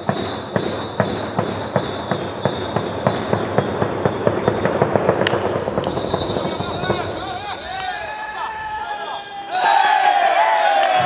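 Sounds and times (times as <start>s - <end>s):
sharp rhythmic claps: 0.0s - 8.0s, 10.5s - 11.0s
ballpark background noise: 0.0s - 11.0s.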